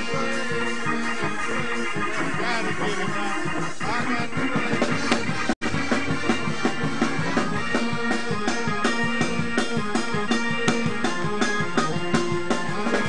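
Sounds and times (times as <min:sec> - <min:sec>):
drum kit fast beat: 0:00.0 - 0:13.0
sustained keyboard chords: 0:00.0 - 0:13.0.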